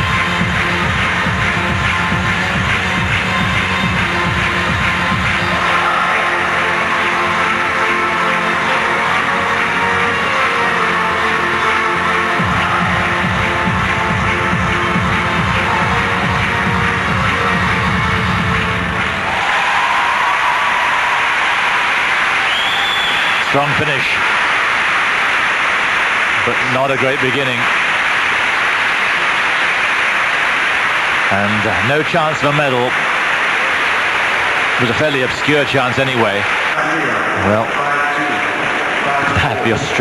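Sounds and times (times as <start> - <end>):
music with driving beat: 0.0 - 5.7, 12.3 - 19.1
crowd applause and cheering: 0.0 - 40.0.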